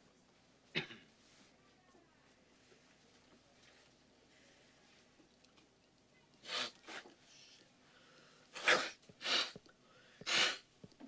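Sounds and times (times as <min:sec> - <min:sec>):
person blowing nose: 0:06.4 - 0:07.1, 0:08.6 - 0:09.6, 0:10.2 - 0:10.7.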